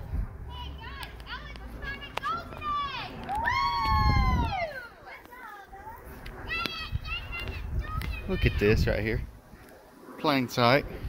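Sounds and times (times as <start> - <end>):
wind rumble on microphone: 0.0 - 2.0, 2.6 - 4.8, 5.8 - 9.8, 10.4 - 11.0
children shouting in distance: 0.5 - 8.9.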